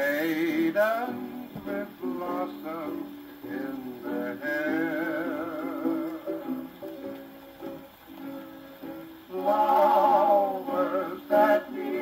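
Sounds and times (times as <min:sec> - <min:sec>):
hawaiian music on phonograph: 0:00.0 - 0:12.0.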